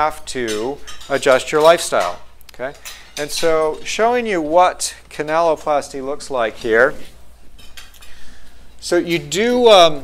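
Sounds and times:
cutlery clinking on plates: 0.4s - 4.6s, 7.6s - 8.2s.

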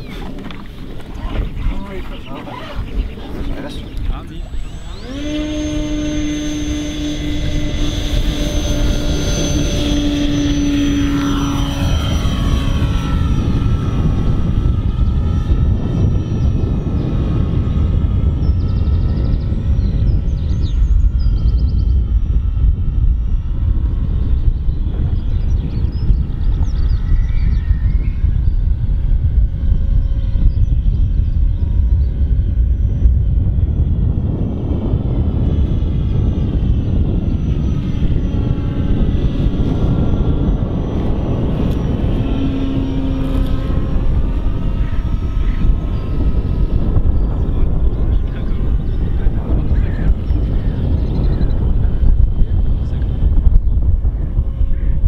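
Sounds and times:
low rumble: 0.0s - 55.0s
model aircraft motor whining: 0.0s - 55.0s.

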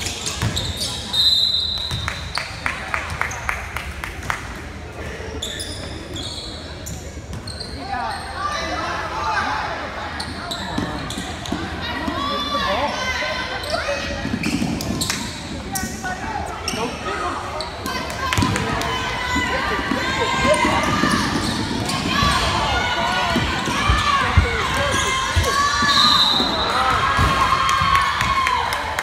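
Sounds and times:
sneaker squeaks: 0.1s - 2.5s, 5.4s - 8.7s, 13.6s - 18.0s, 20.6s - 22.7s, 23.6s - 27.3s
ball bouncing on court: 0.3s - 0.7s, 23.3s - 28.4s.

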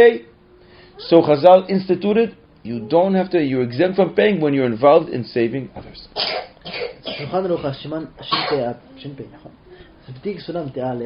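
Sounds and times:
man speaking: 0.0s - 0.3s, 1.0s - 6.2s, 7.1s - 11.0s.

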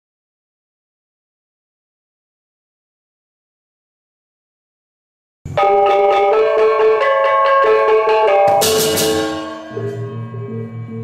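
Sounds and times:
gamelan music: 5.6s - 11.0s
bright cymbal crash: 8.3s - 10.1s.

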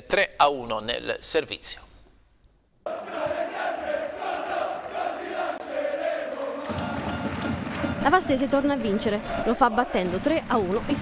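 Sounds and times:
crowd chanting: 2.9s - 11.0s
rhythmic clapping: 3.0s - 11.0s.

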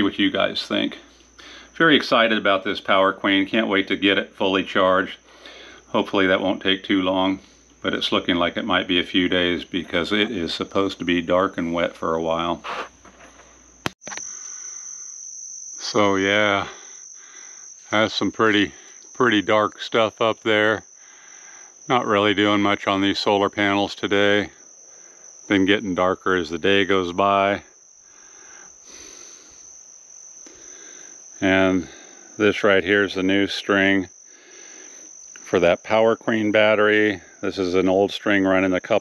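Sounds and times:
high-pitched insect chorus: 0.0s - 39.0s
outdoor background hiss: 0.0s - 39.0s.

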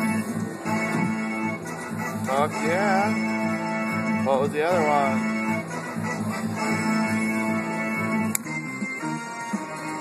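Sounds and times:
electronic organ-like tune with beat: 0.0s - 10.0s.

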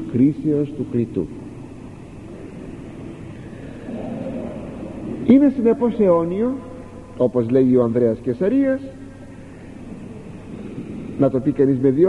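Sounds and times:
background hiss: 0.0s - 12.0s
low hum: 0.0s - 12.0s.

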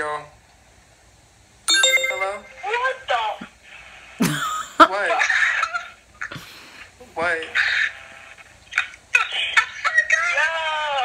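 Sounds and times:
electronic ringtone chime: 1.7s - 2.6s.

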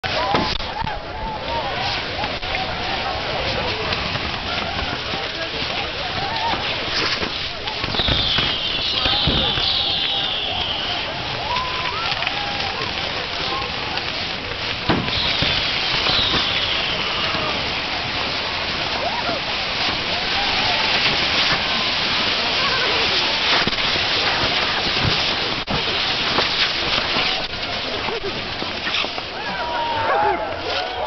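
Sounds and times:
people shouting: 0.0s - 13.9s, 14.8s - 24.9s, 29.3s - 31.0s
firework bangs: 0.0s - 30.6s
fireworks hissing and crackling: 0.0s - 31.0s
falling whistle of fireworks: 6.2s - 12.9s, 14.8s - 22.0s.

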